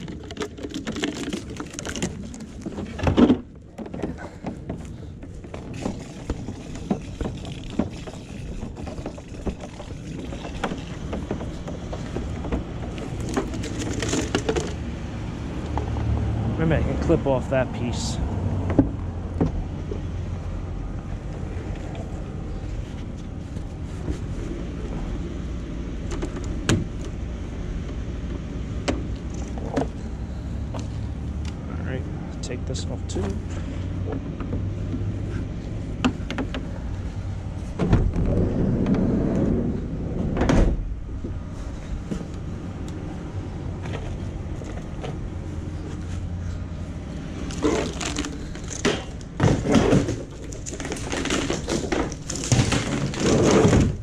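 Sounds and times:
hose rustling: 0.0 - 14.8, 41.4 - 54.0
plastic cords clicking: 0.0 - 14.8, 47.4 - 54.0.

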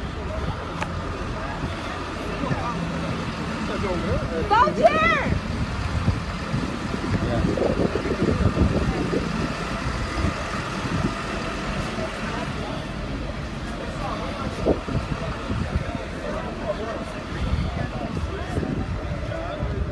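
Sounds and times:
diesel engine idling: 0.0 - 19.9
indistinct voices: 0.0 - 19.9.

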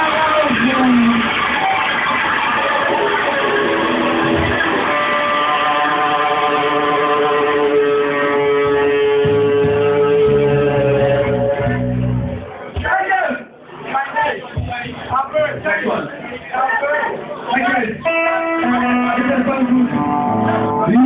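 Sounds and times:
electric guitar: 0.0 - 12.6, 18.0 - 21.0
rock band playing: 0.0 - 12.7, 18.0 - 21.0.

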